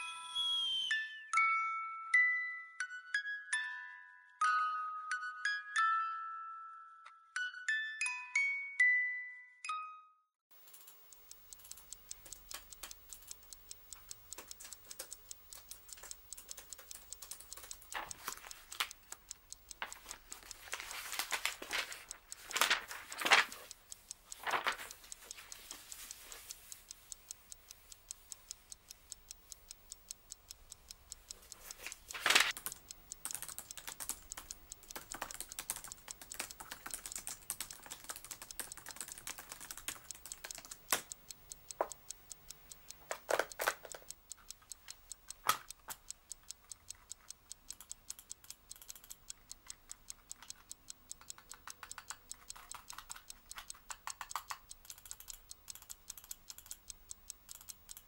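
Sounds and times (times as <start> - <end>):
fast typing on laptop keyboard: 10.5 - 28.1, 30.9 - 58.0
clock ticking: 10.5 - 58.0.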